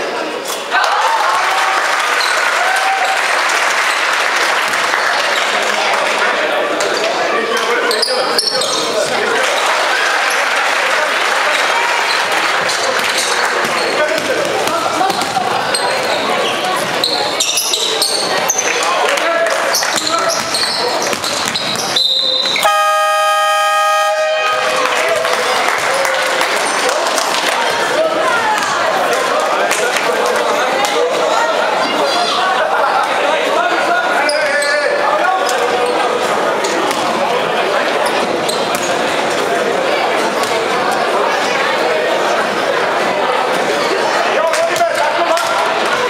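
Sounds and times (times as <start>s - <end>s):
crowd shouting: 0.6s - 7.8s, 21.9s - 37.9s
basketball bouncing: 12.6s - 15.8s, 19.9s - 22.0s
scoreboard horn blast: 22.6s - 24.8s.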